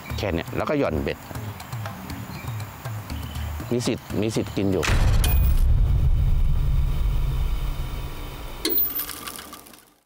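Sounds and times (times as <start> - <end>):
low steady drone: 4.8 - 8.7.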